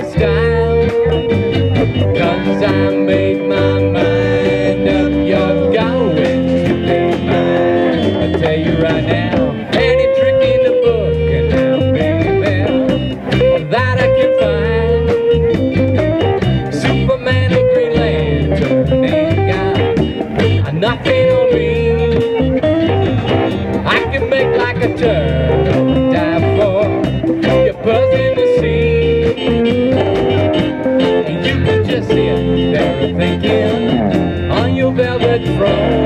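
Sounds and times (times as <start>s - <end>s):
lead electric guitar: 0.0s - 36.0s
rock band playing: 0.0s - 36.0s.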